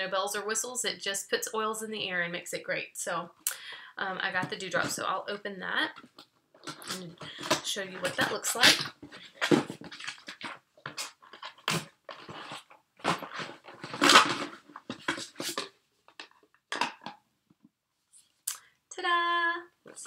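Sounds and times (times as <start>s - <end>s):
cardboard packaging rustling: 5.9s - 17.1s.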